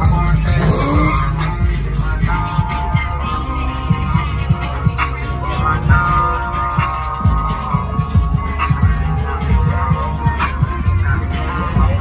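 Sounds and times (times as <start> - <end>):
car engine revving: 0.0 - 5.5.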